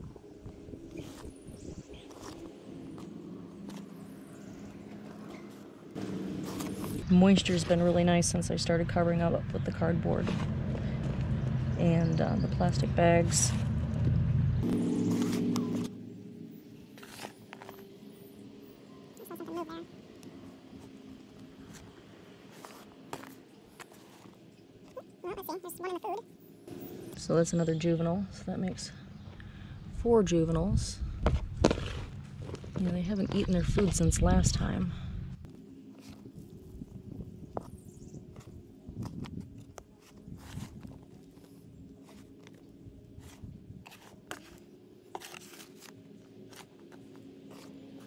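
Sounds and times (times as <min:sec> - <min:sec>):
steady low drone: 0:00.0 - 0:25.0, 0:26.5 - 0:48.0.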